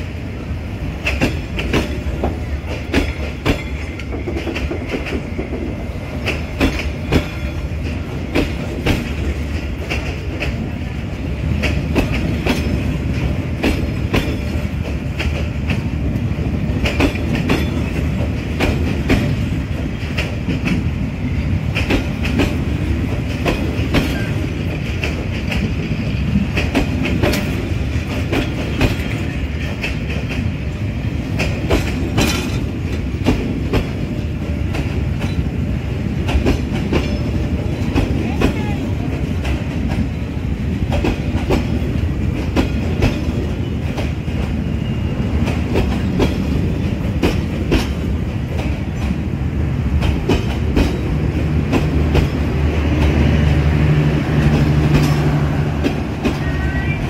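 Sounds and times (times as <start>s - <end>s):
train coaches rumbling past: 0.0s - 57.0s
wheels clacking over rail joints: 0.8s - 57.0s.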